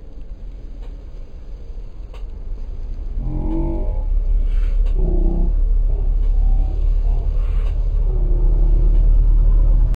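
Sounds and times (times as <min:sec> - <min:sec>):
car rumble from inside cabin: 0:00.0 - 0:10.0.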